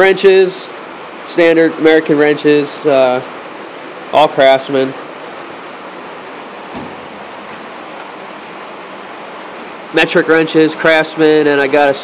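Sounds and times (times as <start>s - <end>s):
steady hiss: 0.0s - 12.0s
tool chest drawer knock: 6.8s - 7.2s.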